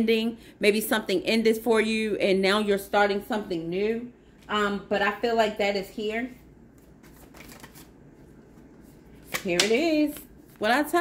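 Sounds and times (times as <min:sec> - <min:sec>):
cards being shuffled: 0:06.8 - 0:10.7.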